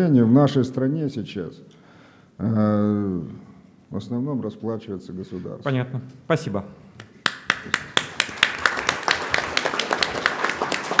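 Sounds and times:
audience applauding: 7.2 - 11.0.

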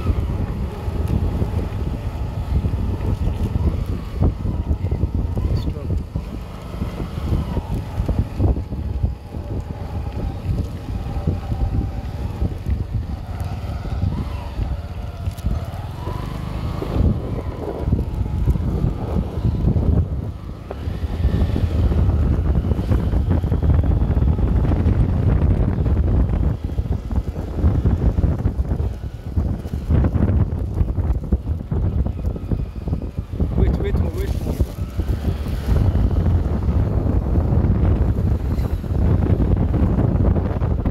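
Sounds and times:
road noise: 0.0 - 40.9
wind buffeting microphone: 0.0 - 40.9.

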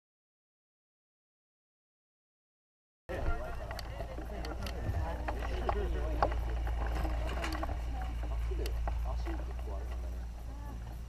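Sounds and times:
indistinct voices: 3.1 - 11.0
wind buffeting microphone: 3.1 - 11.0.

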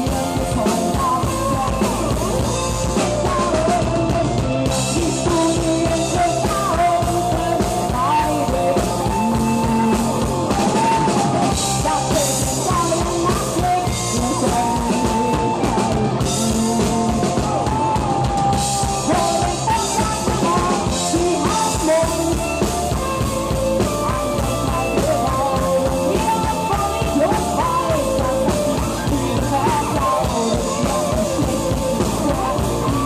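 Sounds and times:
bass: 0.0 - 33.0
electric guitars: 0.0 - 33.0
steady drum beat: 0.0 - 33.0
woman singing: 0.0 - 33.0.

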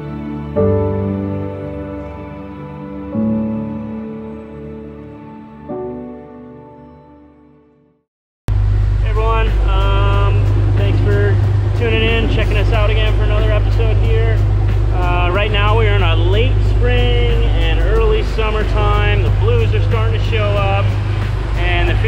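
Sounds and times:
boat engines droning: 8.5 - 22.0
man talking: 9.0 - 21.0, 21.6 - 22.0.

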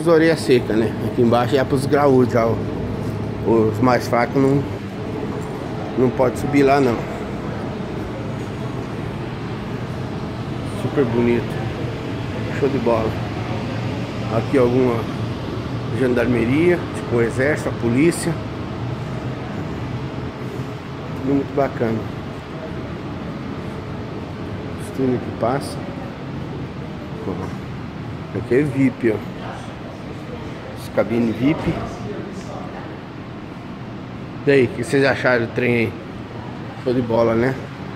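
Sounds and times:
electric train humming: 0.0 - 37.9
faint voices: 0.0 - 37.9.

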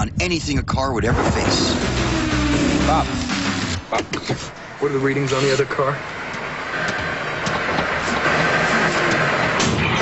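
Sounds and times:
car engine running hard: 1.5 - 10.0.

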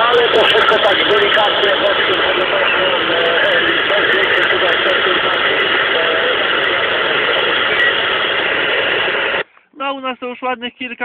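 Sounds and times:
faint voice over radio: 0.0 - 8.2
radio static hiss: 0.0 - 11.0.

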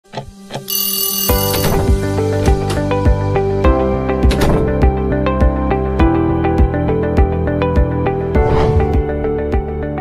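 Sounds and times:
alarm clock ringing: 0.7 - 1.8.

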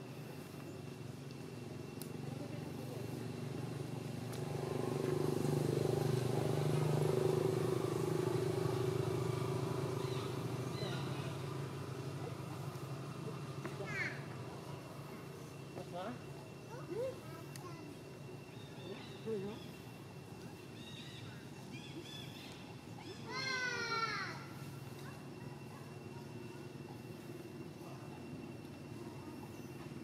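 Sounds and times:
vehicle engine passing by: 2.8 - 13.9.

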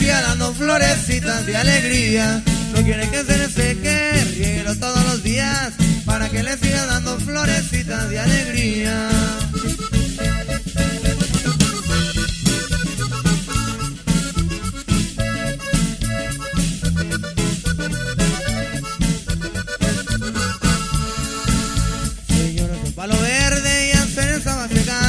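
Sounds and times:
bajo sexto: 0.0 - 25.0
button accordion melody: 0.0 - 25.0
drums keeping a steady beat: 0.0 - 25.0
electric bass: 0.0 - 25.0.

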